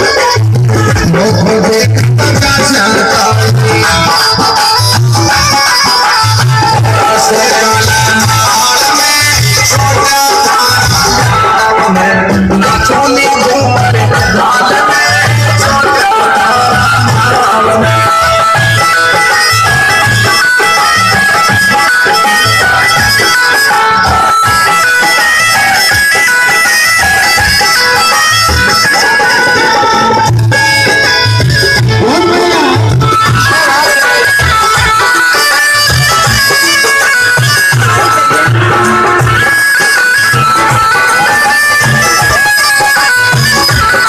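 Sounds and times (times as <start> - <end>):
reedy folk melody: 0.0 - 44.0
repeating drum beat: 0.0 - 44.0.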